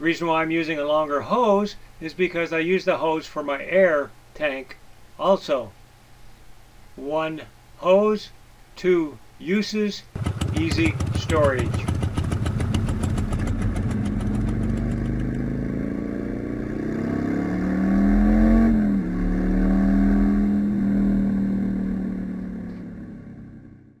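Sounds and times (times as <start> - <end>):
motorcycle engine running: 10.2 - 24.0.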